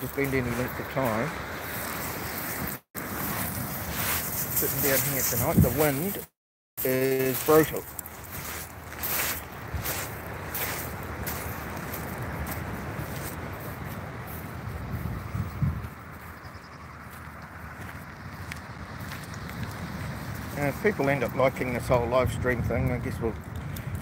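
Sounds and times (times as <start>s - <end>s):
wind on microphone: 0.0s - 6.2s, 8.4s - 16.8s, 21.8s - 24.0s.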